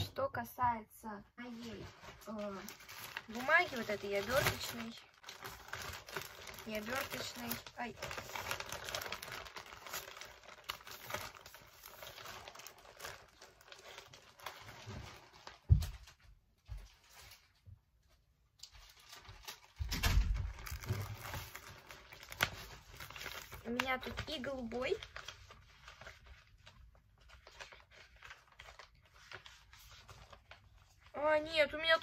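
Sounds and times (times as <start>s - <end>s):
cellophane crinkling: 1.4s - 17.6s, 18.6s - 32.0s
wrapping paper rustling: 1.4s - 32.0s.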